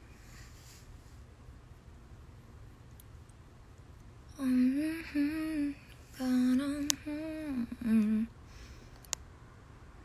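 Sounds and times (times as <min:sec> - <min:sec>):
woman humming softly: 0:04.3 - 0:08.3.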